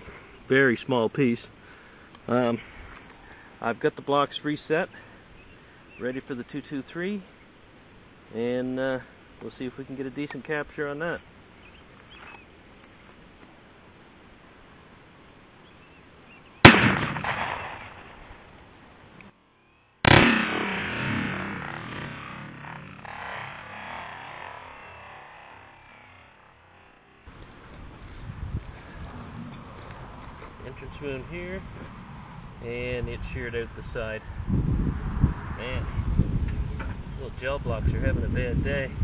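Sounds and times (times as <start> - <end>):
rifle shots echoing: 16.6 - 18.4, 20.0 - 26.4.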